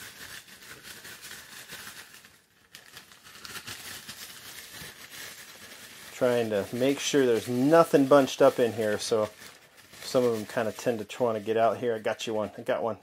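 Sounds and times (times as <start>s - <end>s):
plastic bag crinkling rustle: 0.0s - 13.0s.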